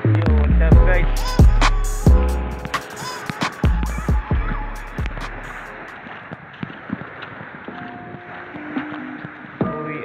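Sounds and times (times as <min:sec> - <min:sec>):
faint background music: 0:07.0 - 0:10.0.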